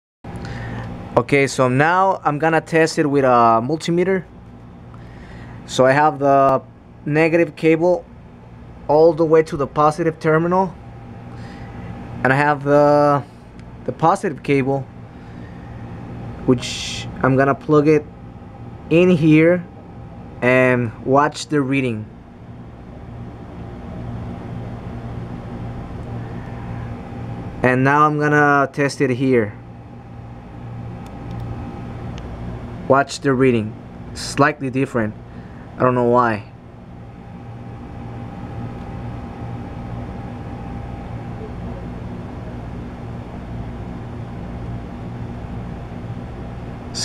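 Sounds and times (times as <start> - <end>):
faint high whine: 0.3 - 47.0
low background hum: 0.3 - 47.0.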